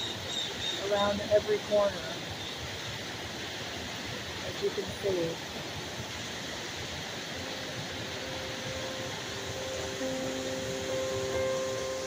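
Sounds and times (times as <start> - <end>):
waterfall rushing: 0.0 - 12.0
soft music of held notes: 7.3 - 12.0.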